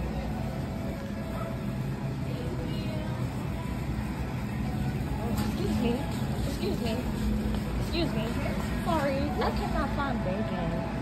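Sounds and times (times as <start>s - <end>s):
shopping cart rolling: 0.0s - 10.2s
constant hum: 0.0s - 11.0s.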